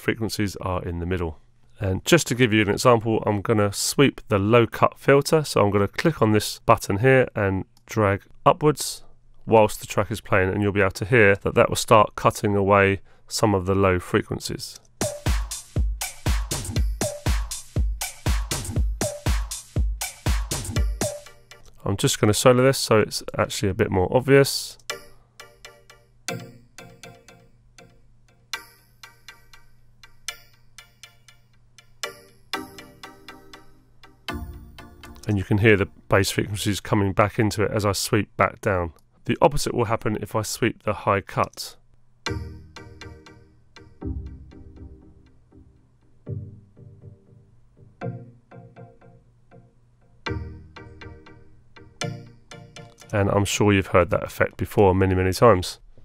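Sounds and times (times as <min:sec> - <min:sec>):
synth pluck melody with delay: 0:24.9 - 0:31.4, 0:32.0 - 0:35.3, 0:42.3 - 0:53.3.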